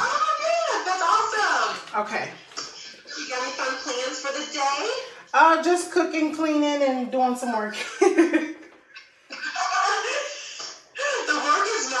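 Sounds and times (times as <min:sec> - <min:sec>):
woman laughing: 0:07.8 - 0:10.4.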